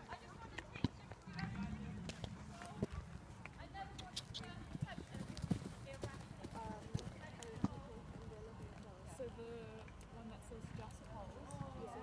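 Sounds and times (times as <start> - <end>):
hoofbeats on sand: 0.8 - 9.8.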